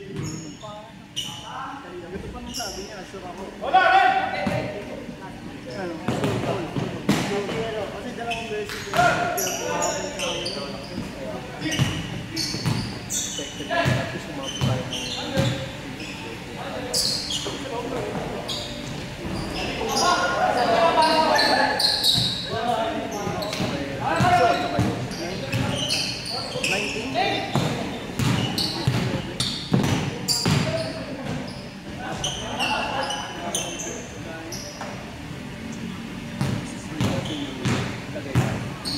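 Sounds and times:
players' voices and calls: 0.0 - 38.9
basketballs bouncing on wooden floor: 27.5 - 31.4.

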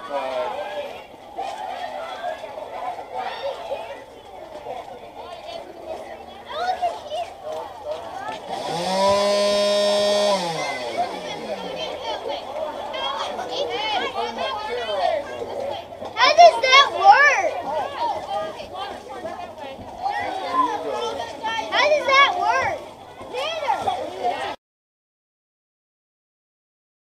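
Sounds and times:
excited voices talking: 0.0 - 24.6
deep electric buzzing: 8.5 - 11.8
high-pitched voice rising: 10.3 - 11.9.

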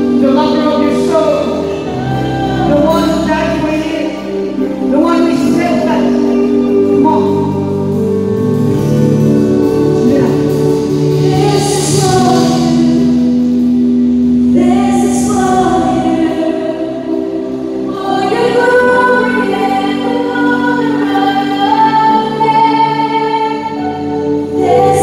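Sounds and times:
electric guitars: 0.0 - 25.0
keyboard: 0.0 - 25.0.

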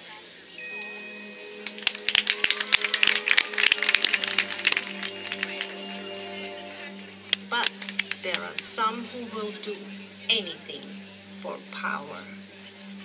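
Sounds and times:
low held tones: 0.6 - 13.0.

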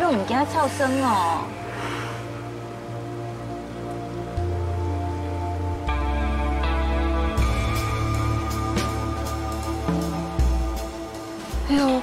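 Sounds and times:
soft music with sustained chords: 0.0 - 12.0.

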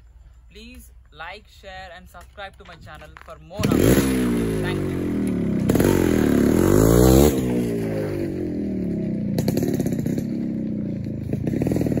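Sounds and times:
motorcycle engine revving: 3.6 - 12.0.

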